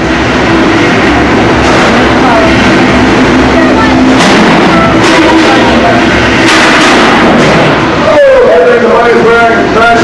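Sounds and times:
crowd voices: 0:00.0 - 0:10.0
steady low hum: 0:00.0 - 0:10.0.

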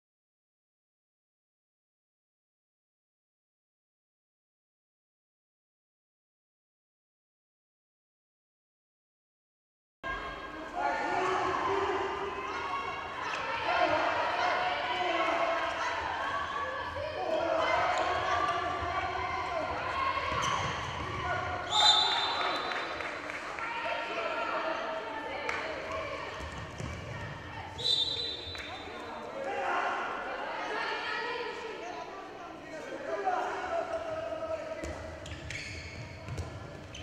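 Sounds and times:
indistinct shouting voices: 0:10.1 - 0:22.7
handball bouncing on court floor: 0:26.4 - 0:27.4, 0:34.8 - 0:37.0.

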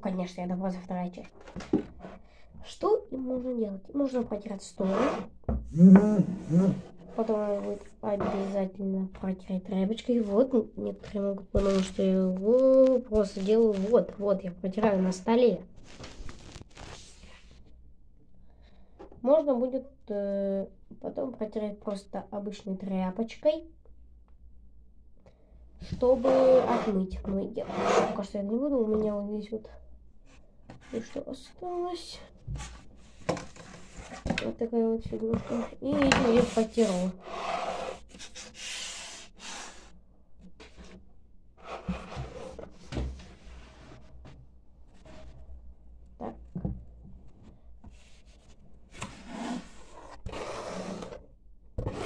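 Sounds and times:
scratchy rubbing of small figure: 0:11.5 - 0:17.6, 0:26.1 - 0:28.3, 0:35.3 - 0:39.9.

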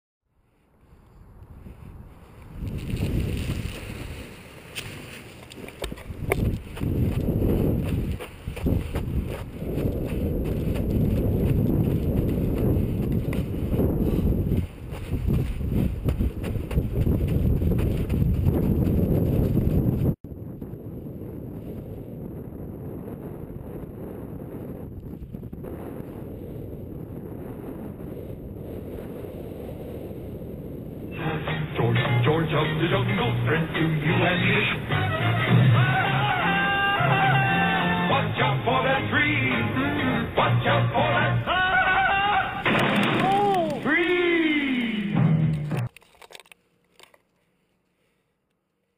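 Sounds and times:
steady rush of wind: 0:00.5 - 0:31.8
wind buffeting microphone: 0:01.2 - 0:31.2.

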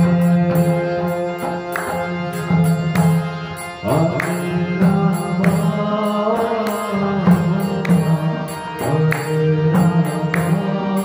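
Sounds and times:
man singing chant: 0:00.0 - 0:02.8, 0:03.8 - 0:11.0
harmonium sustained notes: 0:00.0 - 0:11.0
percussion strokes: 0:00.0 - 0:11.0.

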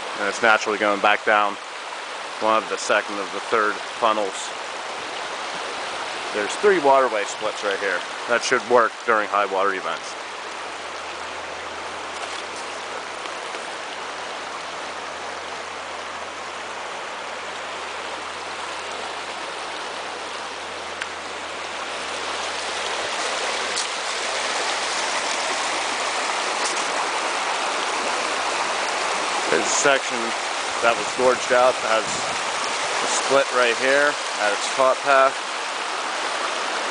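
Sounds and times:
brook water rushing over stones: 0:00.0 - 0:36.9.

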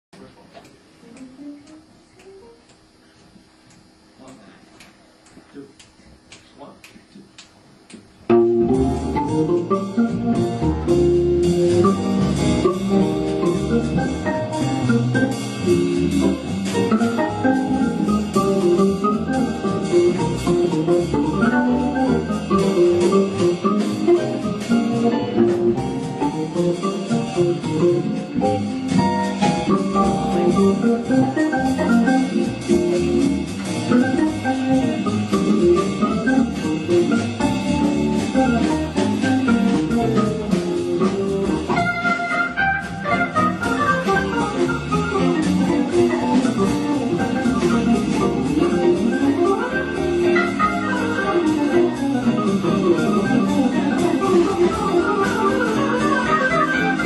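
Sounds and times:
drums: 0:00.2 - 0:57.0
upright bass: 0:08.2 - 0:57.0
electric guitar: 0:08.3 - 0:57.0
organ: 0:08.3 - 0:57.0.

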